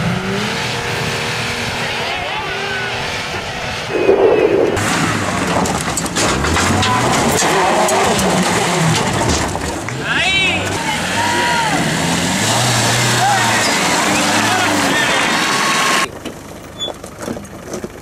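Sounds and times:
off-road engines revving: 0.0s - 16.1s
spectators talking and shouting: 10.0s - 16.1s.

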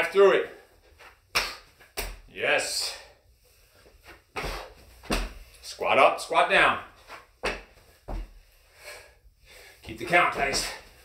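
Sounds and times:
feet thumping on carpet: 4.4s - 5.5s, 7.4s - 8.4s.

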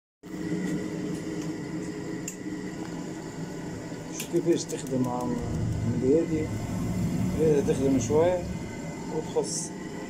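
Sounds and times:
gas boiler humming: 0.2s - 10.0s.

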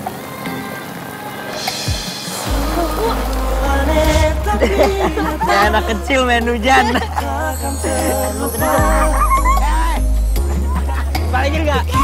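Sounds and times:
background music: 0.0s - 12.0s
whoosh: 2.0s - 6.0s
deep bass line: 2.5s - 12.0s.

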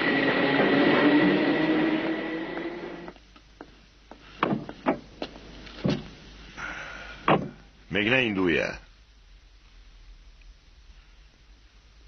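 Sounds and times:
tram passing with whine: 0.0s - 3.2s.

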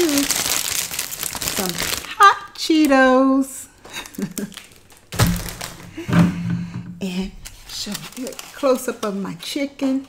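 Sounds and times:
snack bag thunk on table: 5.1s - 6.5s.

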